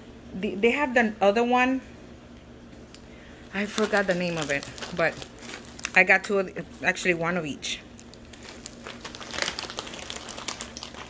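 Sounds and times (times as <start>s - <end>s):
plastic packaging crinkling: 3.4s - 6.1s, 7.9s - 11.0s.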